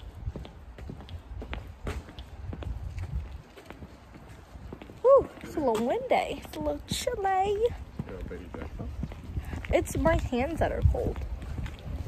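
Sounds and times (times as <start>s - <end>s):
footsteps clicking: 0.0s - 12.0s
wind buffeting microphone: 0.0s - 12.0s.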